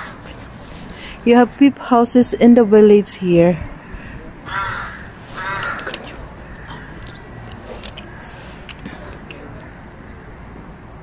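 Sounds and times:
crow cawing: 3.9s - 7.1s.

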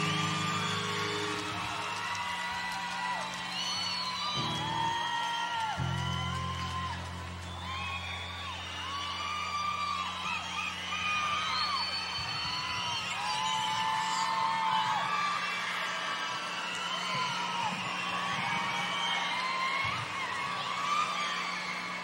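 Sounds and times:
crowd cheering and screaming: 0.0s - 22.0s.

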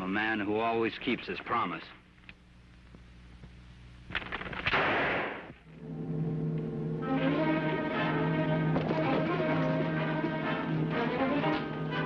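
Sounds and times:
gunshots: 4.2s - 5.6s.

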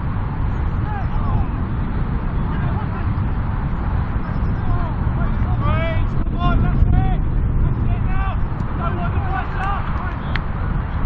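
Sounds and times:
distant voices calling: 0.0s - 11.0s
wind buffeting microphone: 0.0s - 11.0s.

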